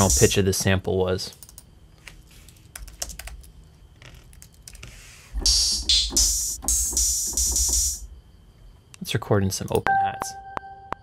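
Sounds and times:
bright hissy hi-hat hits: 0:00.0 - 0:00.4, 0:05.4 - 0:08.1.

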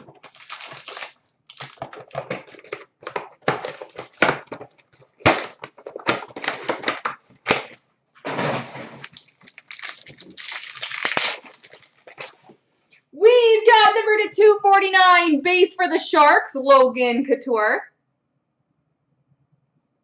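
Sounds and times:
plastic wrapping crinkling: 0:00.0 - 0:07.8, 0:08.9 - 0:12.6
cardboard and plastic tearing: 0:00.0 - 0:12.5.

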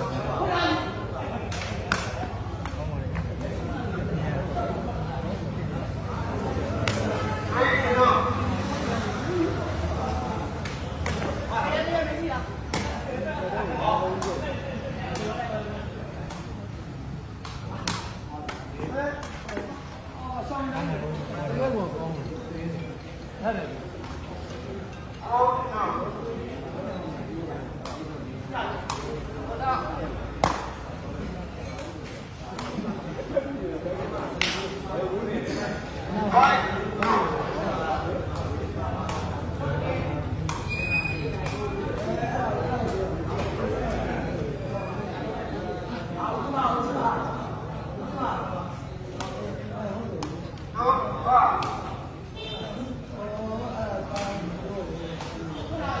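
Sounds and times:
murmur of spectators: 0:00.0 - 0:56.0.

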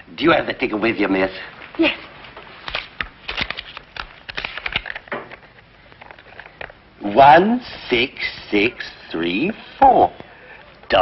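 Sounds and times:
paper handling clicks and rustles: 0:02.6 - 0:06.8.

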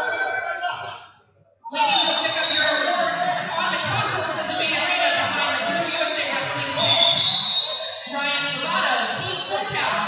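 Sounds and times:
voices in a large hall: 0:00.0 - 0:10.0
referee's whistle blast: 0:06.8 - 0:08.1.

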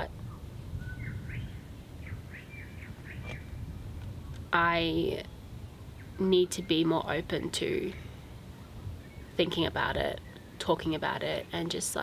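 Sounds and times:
birds chirping: 0:00.0 - 0:12.0
steady low rumble: 0:00.0 - 0:12.0.

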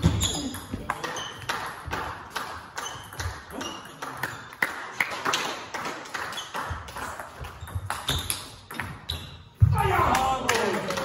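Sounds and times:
table tennis ball rally: 0:00.0 - 0:11.0.

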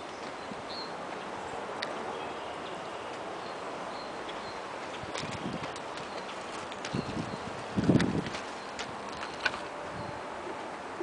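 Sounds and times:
faint outdoor background noise: 0:00.0 - 0:11.0
footsteps on gravel: 0:04.6 - 0:09.8.

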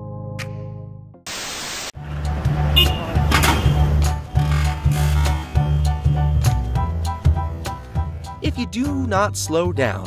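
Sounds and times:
static-like hiss: 0:01.3 - 0:01.9.

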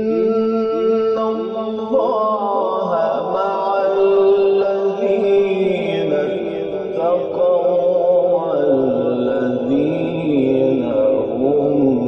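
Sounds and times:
man reciting melodically: 0:00.0 - 0:12.0.

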